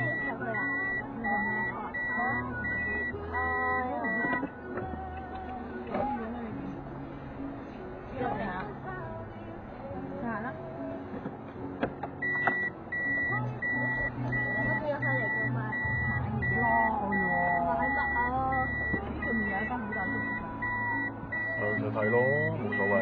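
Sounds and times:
car warning beep: 0.0s - 4.5s, 12.2s - 23.0s
road noise: 0.0s - 23.0s.

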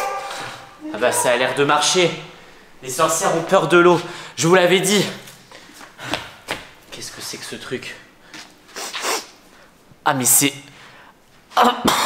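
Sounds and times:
man sniffing: 8.4s - 9.4s.

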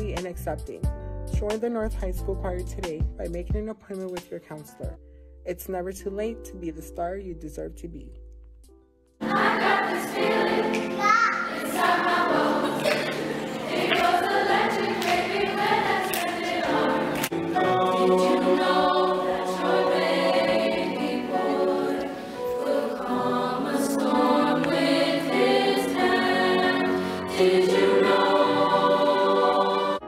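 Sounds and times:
choir singing: 9.2s - 30.0s.

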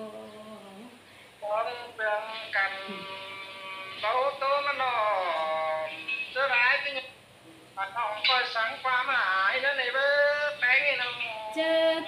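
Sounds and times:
person singing folk chant: 0.0s - 6.1s, 7.8s - 12.0s.

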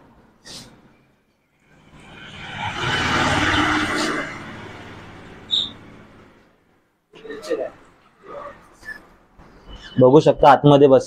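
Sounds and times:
vehicle passing by: 1.6s - 6.7s.

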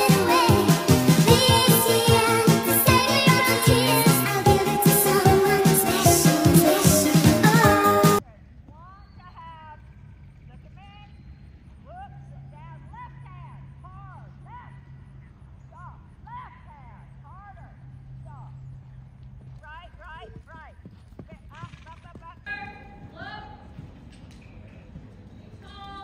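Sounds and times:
horse hoofbeats on sand: 18.7s - 26.0s.

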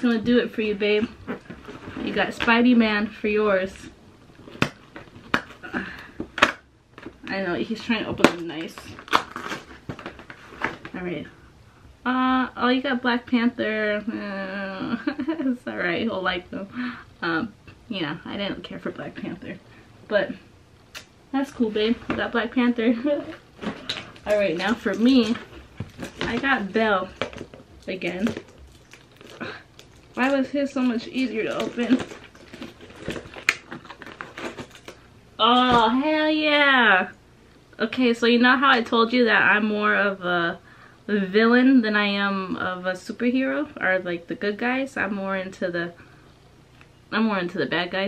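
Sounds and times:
cardboard crunching and crinkling: 8.2s - 11.0s, 23.2s - 35.0s
packaging being torn open: 9.0s - 10.3s, 27.1s - 30.4s, 31.2s - 35.0s
packaging snapping: 23.6s - 35.0s.

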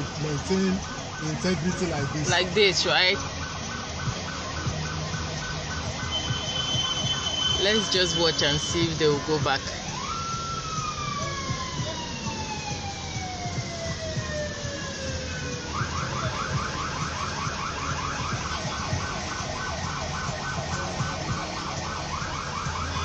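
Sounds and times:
low traffic rumble: 0.0s - 23.0s
siren wailing and yelping: 0.0s - 23.0s.

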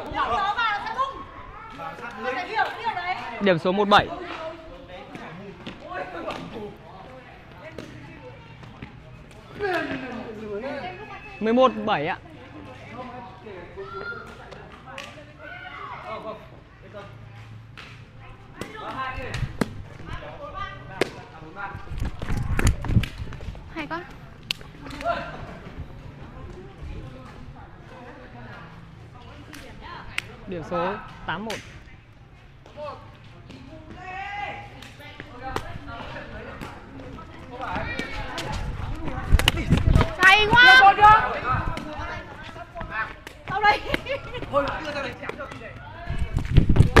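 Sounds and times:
faint background chatter: 0.0s - 47.0s
foot kicking shuttlecock: 34.7s - 40.9s.

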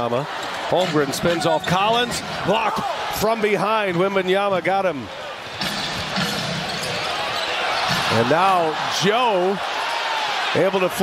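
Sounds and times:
large crowd cheering: 0.0s - 11.0s.

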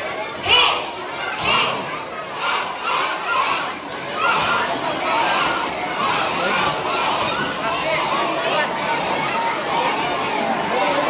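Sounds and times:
young children chattering and shouting: 0.0s - 11.0s.

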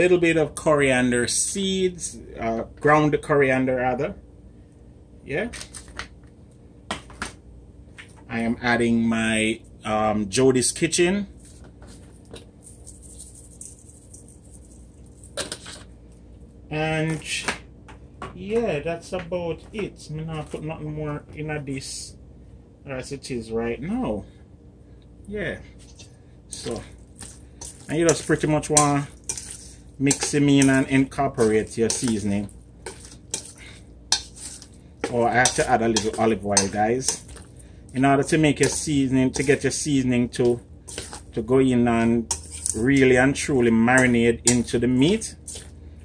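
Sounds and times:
low steady hum: 0.0s - 46.0s
seasoning shaker rustling: 11.2s - 16.2s, 25.7s - 46.0s
wet squelching of hands mixing: 25.8s - 46.0s.

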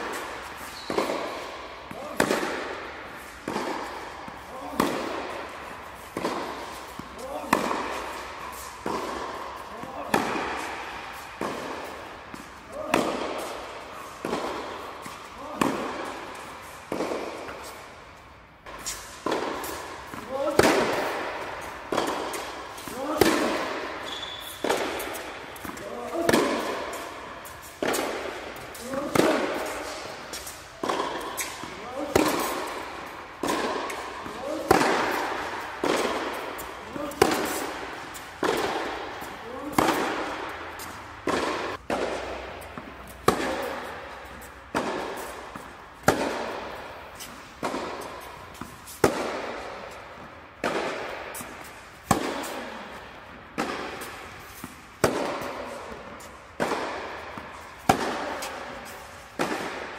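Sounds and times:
tennis ball hit by racquets: 0.0s - 59.9s.

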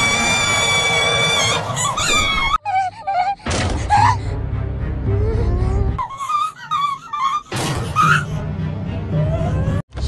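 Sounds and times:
high-pitched scream: 0.0s - 2.6s.

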